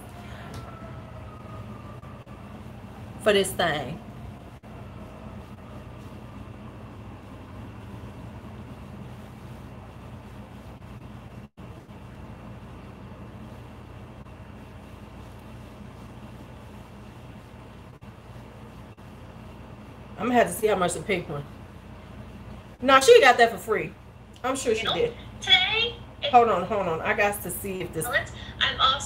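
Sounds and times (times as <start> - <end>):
air conditioner hum: 0.0 - 29.0.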